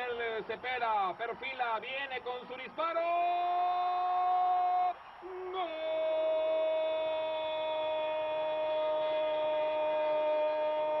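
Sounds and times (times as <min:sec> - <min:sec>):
man shouting goal cry: 0:02.9 - 0:11.0.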